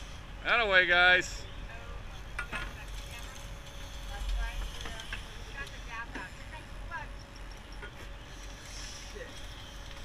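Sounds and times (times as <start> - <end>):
boat engine rumble: 0.0 - 10.0.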